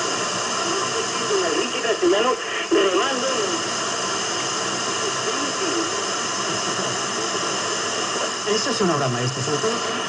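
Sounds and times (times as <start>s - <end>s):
radio static hiss: 0.0s - 10.0s
radio voices talking: 0.1s - 10.0s.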